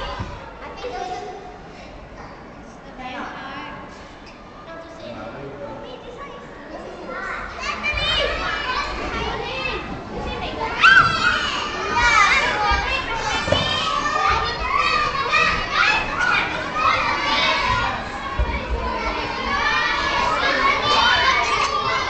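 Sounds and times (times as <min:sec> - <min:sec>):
children shouting and chattering: 0:00.0 - 0:22.0.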